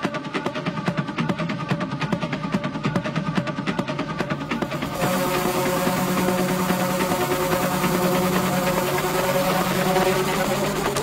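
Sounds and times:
droning synthesizer chord: 4.6s - 11.0s.

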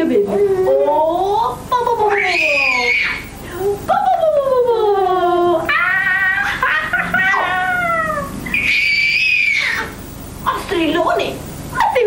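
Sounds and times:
woman's voice: 0.0s - 5.8s, 10.4s - 12.0s
baby crying: 7.2s - 10.0s.

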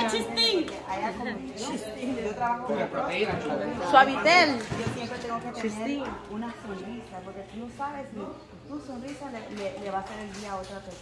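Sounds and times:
group conversation: 0.0s - 11.0s.

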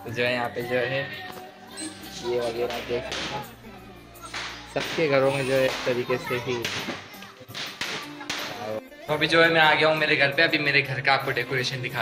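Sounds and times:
faint background music: 0.0s - 12.0s
sharp cracks: 3.1s - 3.6s, 4.2s - 8.8s.

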